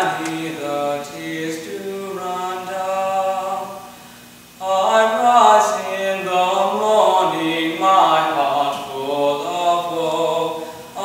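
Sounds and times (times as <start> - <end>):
boy singing unaccompanied: 0.0 - 4.0, 4.6 - 11.0.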